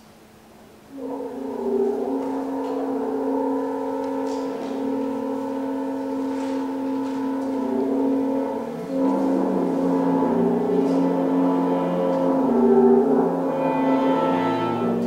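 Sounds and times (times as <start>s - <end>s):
chamber ensemble holding chord: 0.9s - 15.0s.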